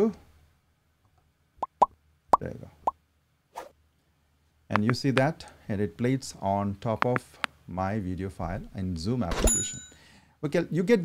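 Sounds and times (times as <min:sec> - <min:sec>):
pop sound effects: 0:01.6 - 0:01.9.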